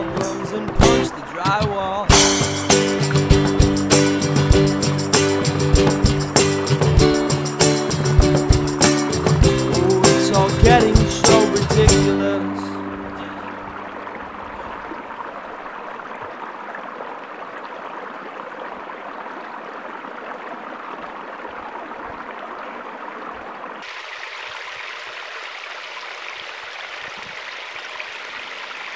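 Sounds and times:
creek rushing over rocks: 0.0 - 28.9.

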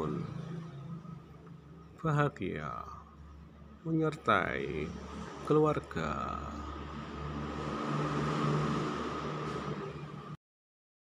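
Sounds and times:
high-pitched whine: 0.0 - 10.4.

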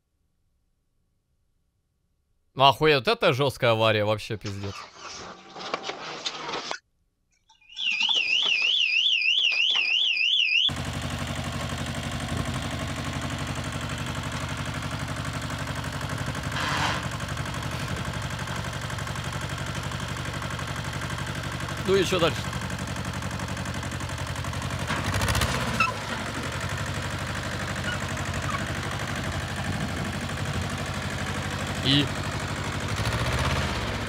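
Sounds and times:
electronic alarm warbling: 7.5 - 10.7
tractor diesel engine running: 10.6 - 34.0
tyres on loose gravel: 11.5 - 32.8.

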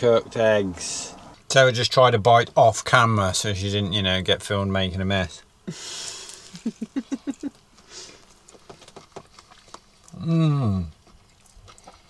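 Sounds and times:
man chuckling with mouth full: 5.7 - 7.6
man chewing crunchy food: 5.8 - 12.0.

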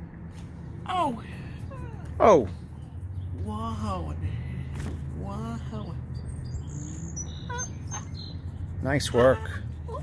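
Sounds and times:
faint birds chirping: 0.9 - 9.8
thin high bird calls: 5.8 - 9.4.

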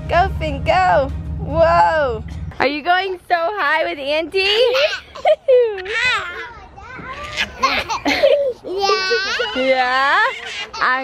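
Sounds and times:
woman talking and laughing: 4.3 - 6.0, 7.7 - 11.0
voices and laughter: 4.4 - 11.0
toddler laughing and squealing: 4.6 - 11.0.

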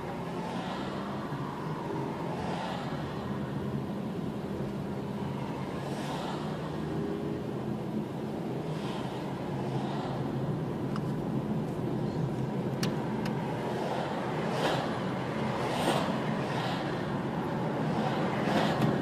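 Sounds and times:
car engine and tyres rumbling: 0.0 - 19.0.

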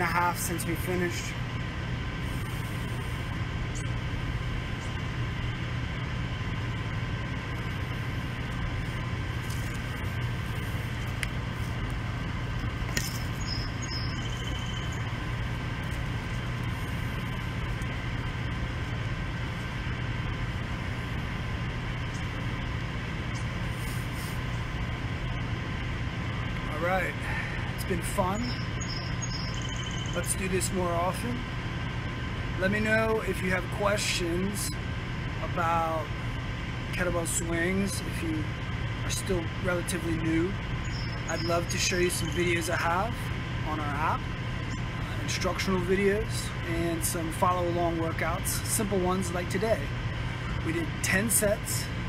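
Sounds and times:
steady machine hum: 0.0 - 52.0.

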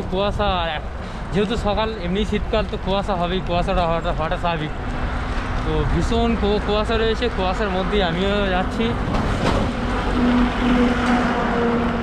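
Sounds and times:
road and wind noise: 0.0 - 12.0
truck engine drone: 2.1 - 12.0.

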